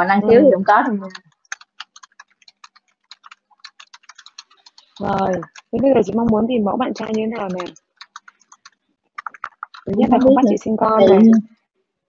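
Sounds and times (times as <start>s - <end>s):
keyboard typing: 0.9s - 11.6s.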